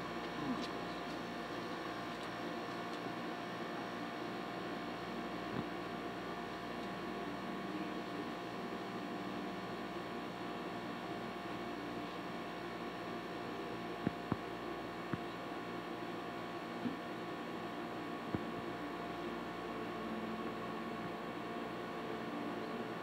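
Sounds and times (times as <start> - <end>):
low electrical hum: 0.0 - 23.0.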